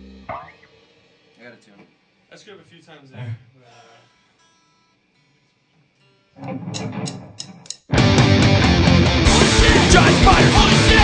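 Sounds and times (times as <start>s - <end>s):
punk rock band playing: 6.5s - 11.0s.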